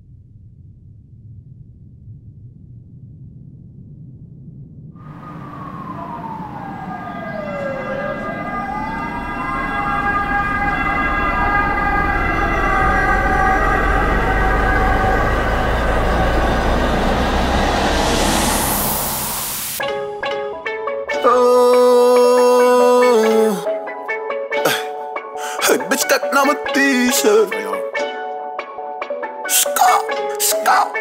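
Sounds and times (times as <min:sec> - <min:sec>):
deep rumble: 0:00.0 - 0:19.8
siren-like wail: 0:05.0 - 0:19.8
rising whoosh: 0:05.0 - 0:20.0
music beat: 0:19.8 - 0:31.0.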